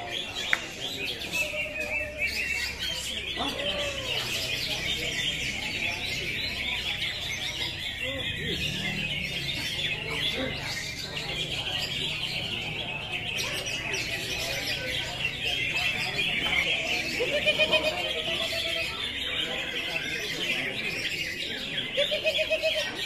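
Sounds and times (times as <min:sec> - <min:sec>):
chorus of birds singing: 0:00.0 - 0:23.0
people talking: 0:00.0 - 0:23.0.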